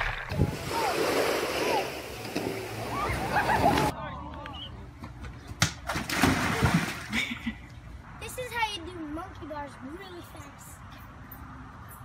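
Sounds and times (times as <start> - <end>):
water splashing in pool: 0.0 - 3.9, 5.8 - 7.4.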